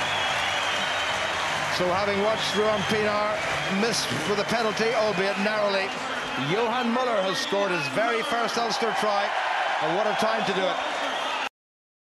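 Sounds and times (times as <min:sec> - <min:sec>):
stadium crowd applauding: 0:00.0 - 0:11.5
commentator speaking: 0:01.7 - 0:10.8.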